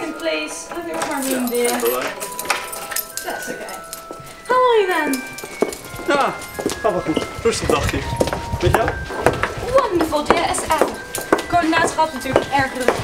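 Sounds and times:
quiet background music: 0.0s - 13.0s.

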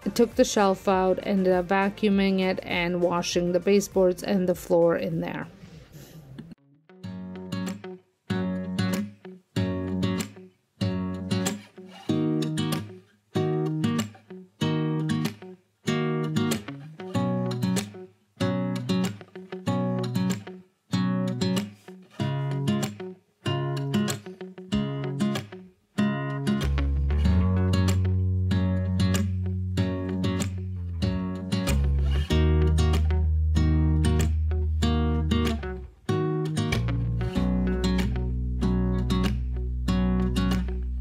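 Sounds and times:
strummed guitar chords: 6.9s - 41.0s.

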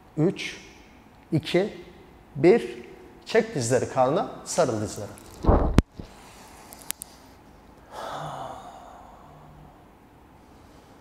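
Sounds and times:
person sighing: 7.9s - 9.7s.

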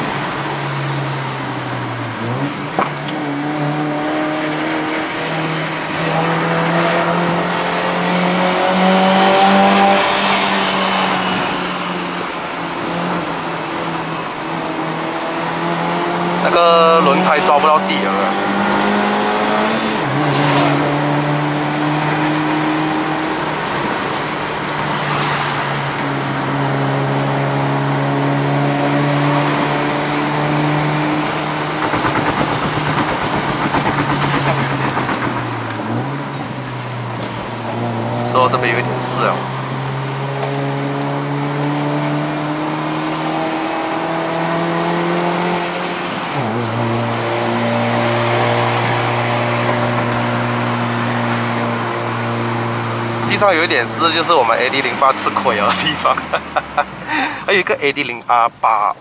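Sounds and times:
car engine revving high: 0.0s - 58.1s.

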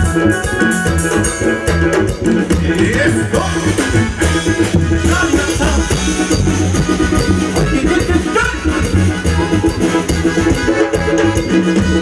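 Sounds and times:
latin dance music over loudspeakers: 0.0s - 12.0s.

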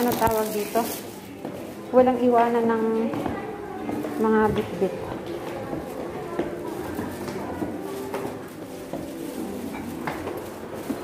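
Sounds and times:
indistinct background voices: 0.0s - 11.0s.

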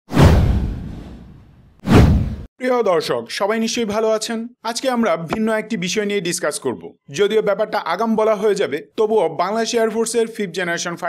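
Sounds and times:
rising whoosh: 0.1s - 2.5s
whoosh with deep rumble: 0.1s - 2.5s.

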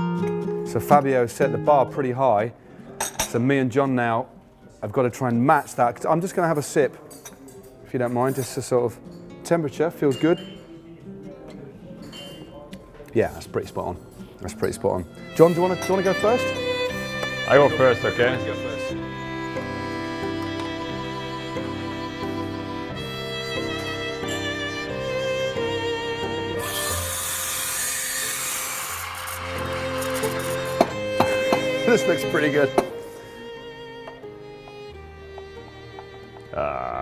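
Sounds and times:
quiet background music: 0.0s - 37.0s
espresso steam wand hissing: 26.6s - 31.4s.

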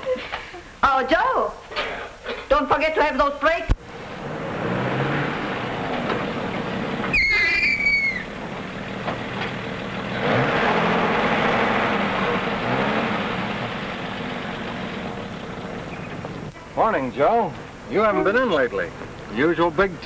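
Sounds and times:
truck engine running: 3.8s - 20.0s
short high squeal: 7.1s - 8.3s.

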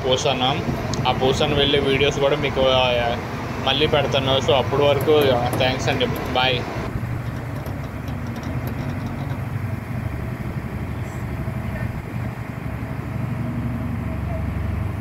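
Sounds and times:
ship engine hum: 0.0s - 15.0s.

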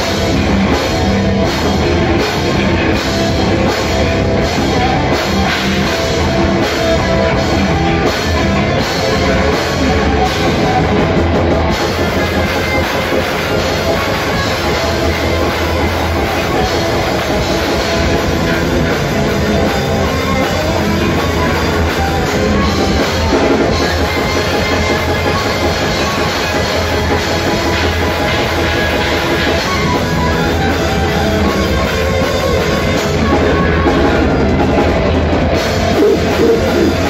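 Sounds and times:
bass guitar: 0.0s - 37.0s
distorted electric guitars: 0.0s - 37.0s
drum kit: 0.0s - 37.0s
heavy metal band playing: 0.0s - 37.0s.

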